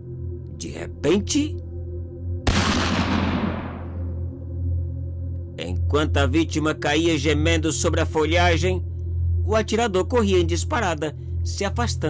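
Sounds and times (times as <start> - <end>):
low music drone: 0.0 - 12.0
gunshot with echo: 2.5 - 4.1.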